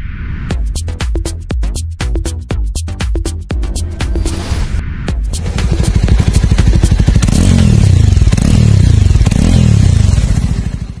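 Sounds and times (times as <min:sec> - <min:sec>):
music: 0:00.5 - 0:08.4
motorcycle engine accelerating: 0:05.2 - 0:11.0.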